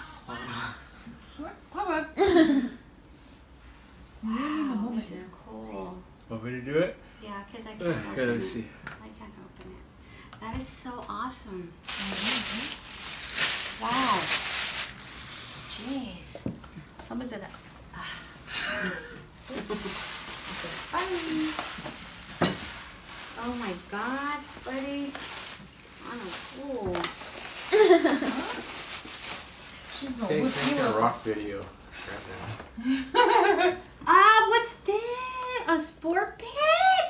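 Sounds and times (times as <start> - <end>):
tissue paper rustling and crinkling: 11.8 - 16.2, 19.4 - 32.6.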